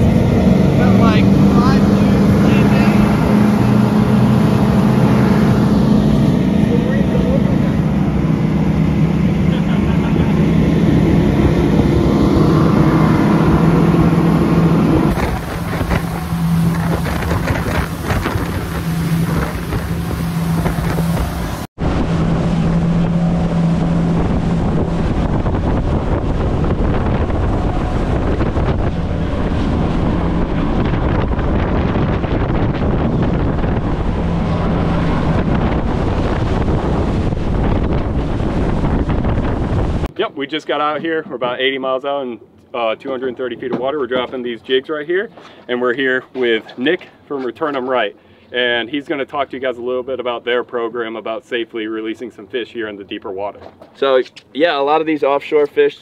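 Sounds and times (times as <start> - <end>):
wind on microphone: 0.0 - 40.1
water rushing from wake: 0.0 - 40.2
boat engine drone: 0.0 - 41.4.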